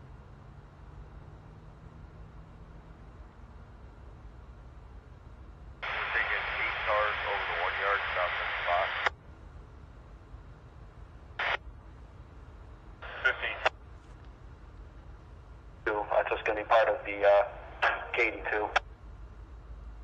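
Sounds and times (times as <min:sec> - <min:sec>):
garbled radio speech: 0:05.8 - 0:09.1, 0:13.0 - 0:13.7, 0:15.9 - 0:18.8
radio squelch click: 0:05.8 - 0:09.2, 0:13.0 - 0:14.4.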